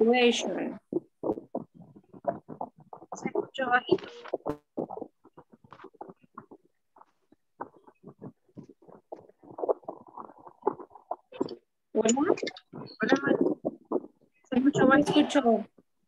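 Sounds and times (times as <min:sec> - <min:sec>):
garbled voice on video call: 0:00.0 - 0:15.8.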